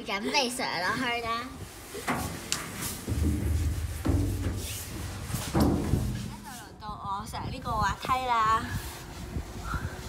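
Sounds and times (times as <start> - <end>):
rumble in metal tube slide: 1.6 - 7.0
booming thumps: 2.1 - 6.8.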